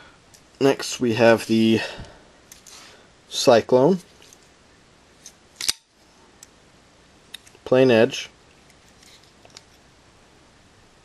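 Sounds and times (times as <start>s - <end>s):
knife blade snapping open: 5.2s - 5.8s.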